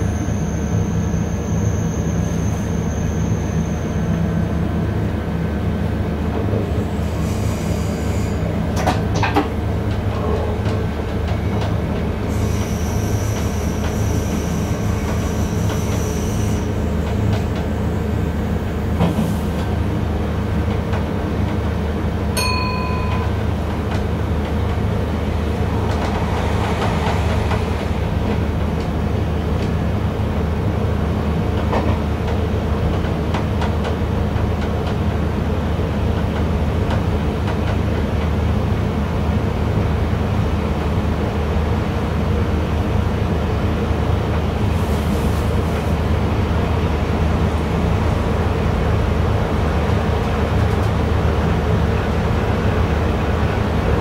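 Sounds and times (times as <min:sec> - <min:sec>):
train motor and wheels drone: 0:00.0 - 0:54.0.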